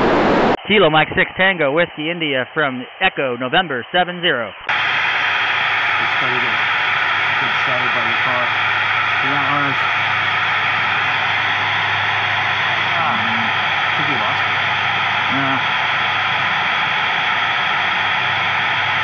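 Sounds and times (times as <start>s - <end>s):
radio static hiss: 0.0s - 1.4s, 4.7s - 19.0s.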